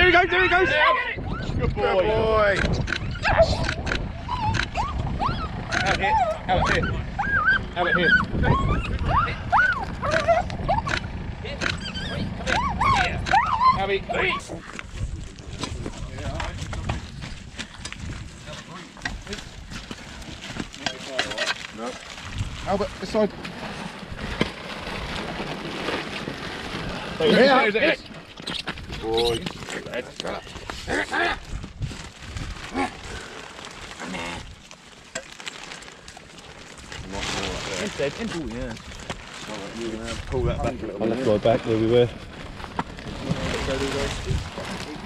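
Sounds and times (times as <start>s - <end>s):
dogs whining: 2.9s - 14.6s
dog wavering cry: 4.2s - 11.0s, 11.6s - 14.4s
person calling to dogs: 11.8s - 14.6s.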